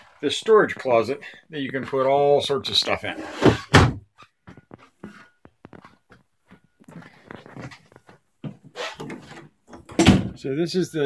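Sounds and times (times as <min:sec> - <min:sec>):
wooden closet door clicks and knocks: 0:03.4 - 0:04.0, 0:09.0 - 0:10.4.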